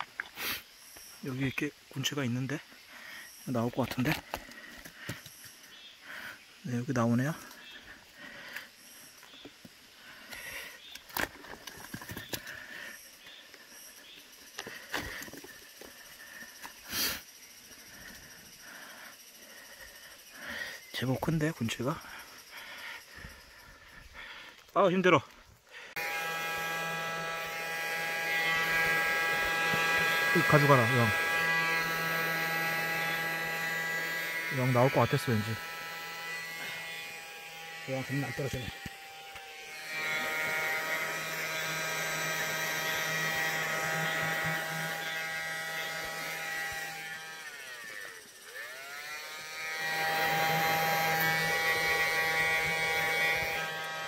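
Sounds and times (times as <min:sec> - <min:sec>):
insect vacuum electric buzz: 0:00.0 - 0:54.0.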